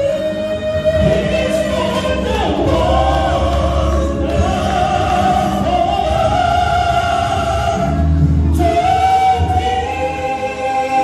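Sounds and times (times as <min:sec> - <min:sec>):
man and woman singing: 0:00.0 - 0:11.0
musical accompaniment: 0:00.0 - 0:11.0.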